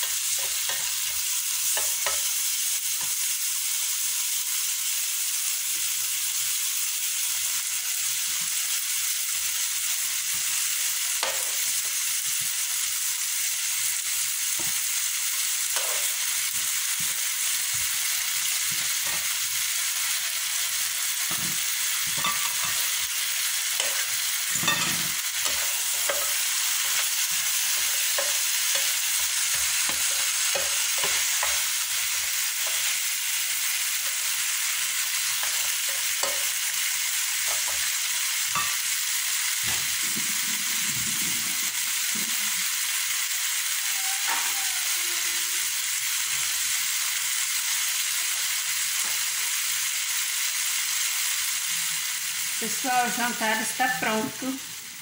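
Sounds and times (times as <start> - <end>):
meat sizzling in a frying pan: 0.0 - 55.0.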